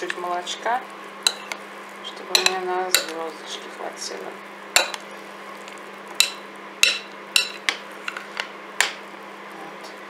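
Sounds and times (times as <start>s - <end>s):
steady low hum: 0.0s - 10.0s
metal spoon clinking on plate: 1.3s - 1.5s, 2.3s - 3.1s, 6.2s - 7.6s.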